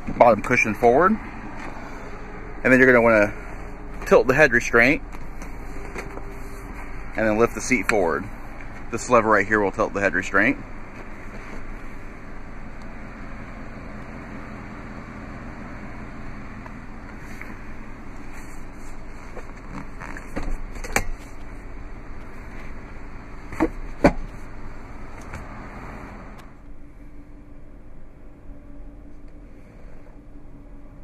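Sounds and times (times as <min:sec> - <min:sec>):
seat latches clicking and clunking: 0:19.3 - 0:21.5.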